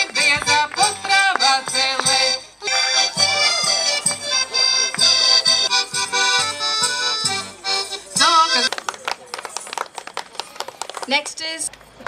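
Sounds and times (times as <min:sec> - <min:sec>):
small crowd clapping: 0:04.7 - 0:05.7, 0:08.6 - 0:11.9.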